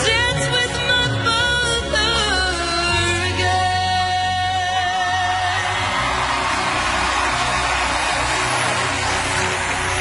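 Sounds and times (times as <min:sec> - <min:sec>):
low music: 0:00.0 - 0:10.0
audience applauding and cheering: 0:05.1 - 0:10.0.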